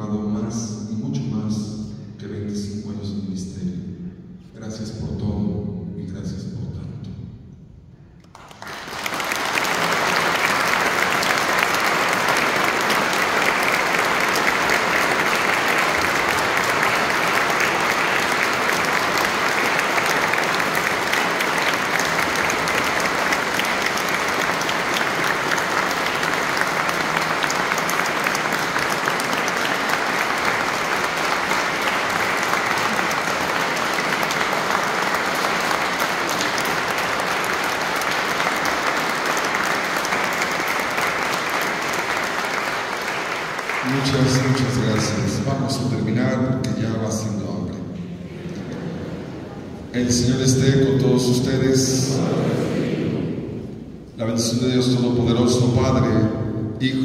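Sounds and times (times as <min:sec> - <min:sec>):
crowd clapping: 0:08.2 - 0:46.2.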